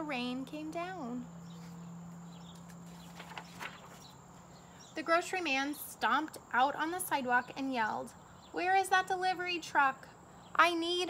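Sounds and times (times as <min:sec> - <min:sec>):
paper pages rustling: 0:02.5 - 0:04.2.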